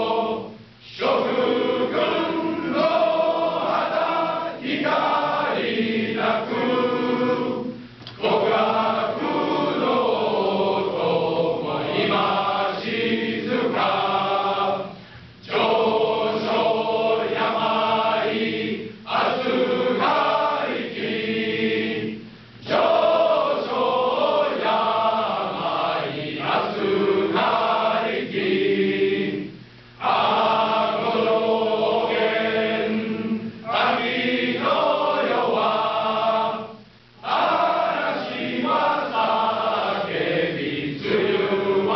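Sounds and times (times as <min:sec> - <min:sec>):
men's choir singing: 0:00.0 - 0:41.9.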